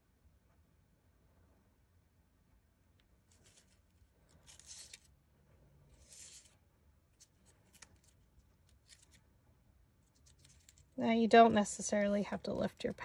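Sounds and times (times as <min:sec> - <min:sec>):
paper rustling: 0:03.2 - 0:05.1, 0:05.9 - 0:09.2, 0:10.0 - 0:11.0.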